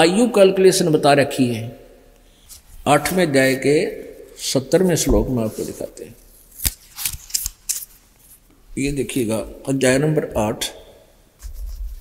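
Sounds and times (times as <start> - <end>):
book pages turning: 5.4 - 8.4.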